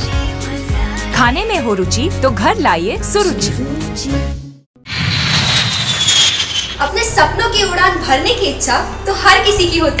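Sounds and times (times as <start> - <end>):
high engine whine falling in pitch: 4.9 - 7.0
jet airliner engines roaring: 4.9 - 7.0.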